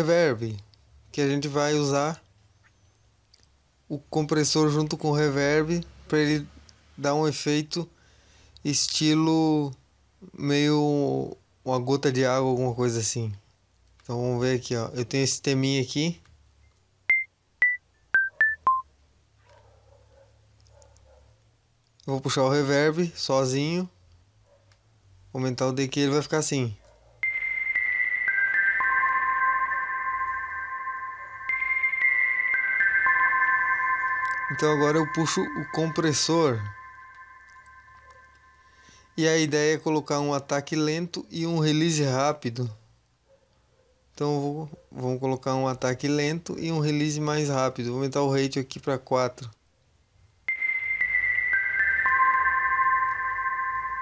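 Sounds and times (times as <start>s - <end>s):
synthesizer melody with reverb: 27.2s - 39.0s, 50.5s - 54.0s.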